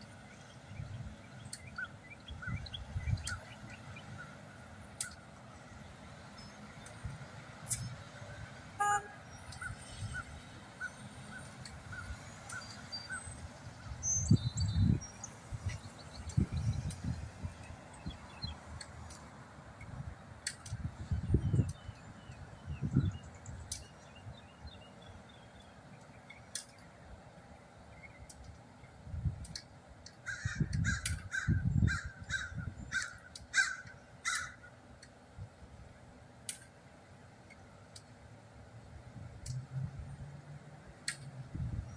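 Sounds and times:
low traffic rumble: 0.0s - 41.9s
car horn honk: 8.8s - 9.2s
faint high chirp: 8.8s - 10.3s.

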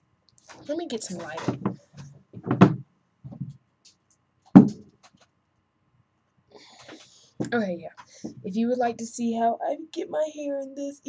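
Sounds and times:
sharp knock: 4.6s - 4.9s.

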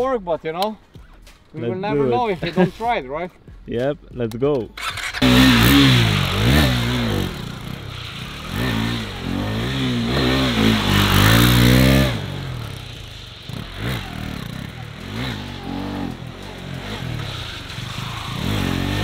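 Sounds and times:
motorcycle engine revving: 4.8s - 19.0s.

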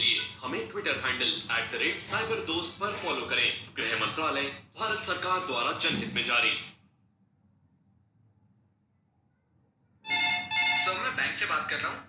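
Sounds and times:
phone ringtone: 10.0s - 11.2s.

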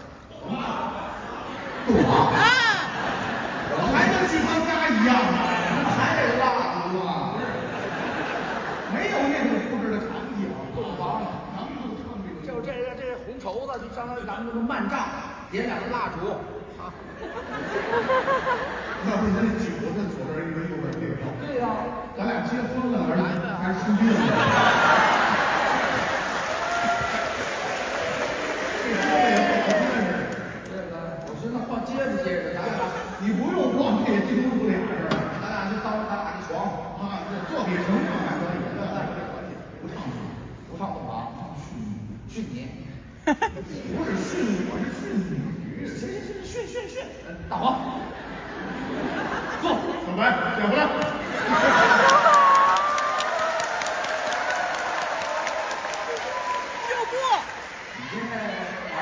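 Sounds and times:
man speaking through a microphone: 3.6s - 7.8s, 8.8s - 17.2s, 19.0s - 24.6s, 29.0s - 43.1s, 43.7s - 48.1s, 58.0s - 59.0s
audience applauding: 24.7s - 30.8s, 51.5s - 59.0s.

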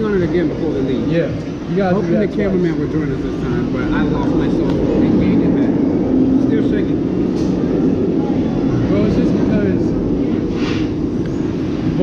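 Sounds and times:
diners chatting: 0.0s - 12.0s
steady low rumble: 0.0s - 12.0s.

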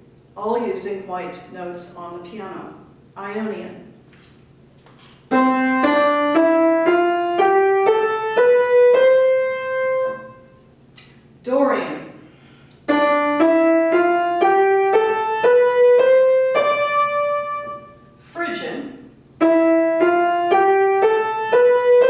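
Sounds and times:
upright piano playing scales: 5.3s - 10.5s, 12.9s - 18.0s, 19.4s - 22.0s.

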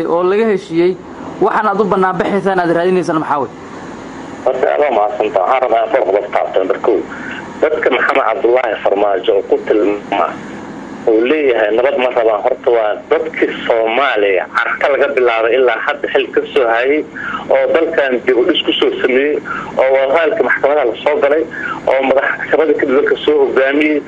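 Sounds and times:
man talking: 4.4s - 24.0s.

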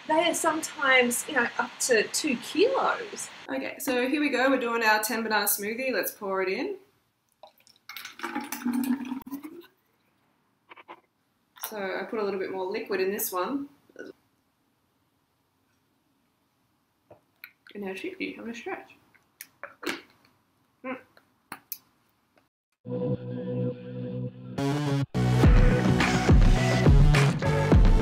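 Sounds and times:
smoothie pouring into bottle: 7.4s - 9.6s.

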